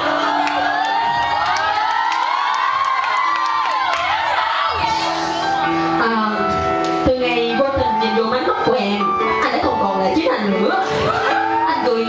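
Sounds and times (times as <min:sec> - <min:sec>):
crowd screaming and cheering: 0:00.0 - 0:06.1, 0:10.8 - 0:12.0.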